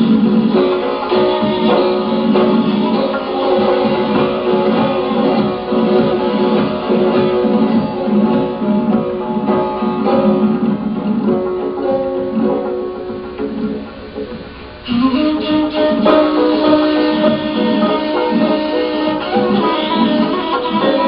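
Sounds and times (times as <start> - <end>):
plucked lute melody: 0.0 - 21.0.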